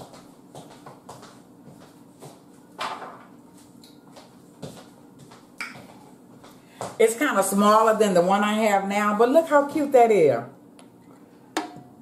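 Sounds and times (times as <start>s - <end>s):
faint steady hum: 0.0s - 12.0s
hookah knocks and clunks: 11.6s - 11.9s.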